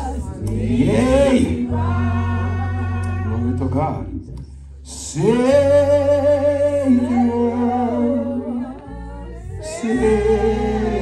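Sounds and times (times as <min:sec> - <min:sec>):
guitar low sustained notes: 0:00.0 - 0:11.0
man singing wordless melody: 0:00.2 - 0:08.8, 0:09.4 - 0:11.0.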